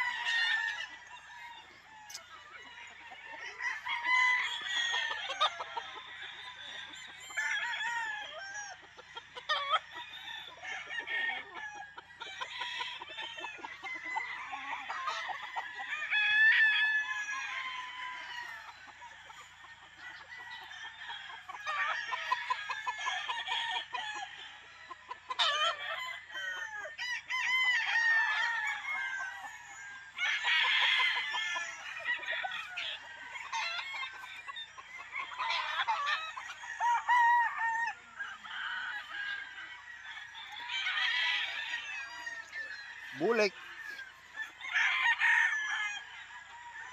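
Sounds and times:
chickens clucking: 0:00.0 - 0:46.9
roosters crowing: 0:00.0 - 0:46.9.

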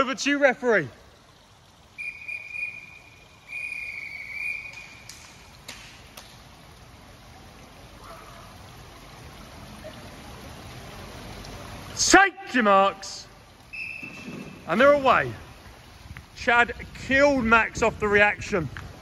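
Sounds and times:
pool hall background: 0:00.0 - 0:18.6
whistle blasts: 0:02.0 - 0:05.2, 0:13.7 - 0:14.7.

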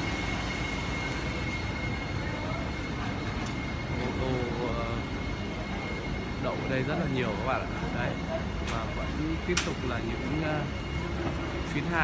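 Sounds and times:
high-pitched whine: 0:00.0 - 0:12.0
truck engines running: 0:00.0 - 0:12.0
faint voices: 0:01.4 - 0:12.0.

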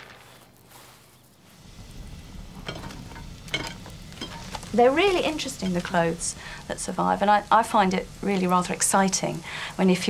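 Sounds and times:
wood fire crackling: 0:00.0 - 0:10.0.

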